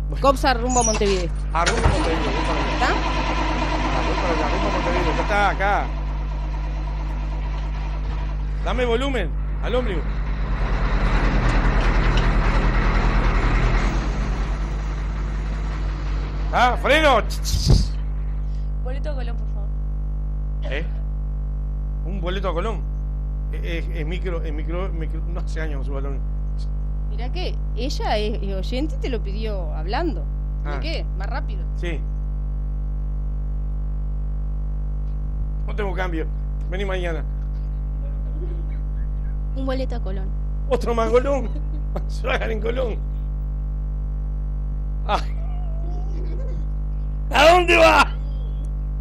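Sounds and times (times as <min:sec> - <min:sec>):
bus engine running: 0:00.0 - 0:19.7, 0:35.2 - 0:43.4
electrical mains hum: 0:00.0 - 0:49.0.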